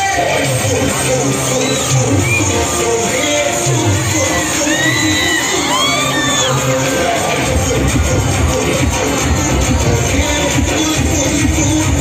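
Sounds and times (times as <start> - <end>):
children shouting and cheering: 0.0 - 12.0
loud dance music: 0.0 - 12.0.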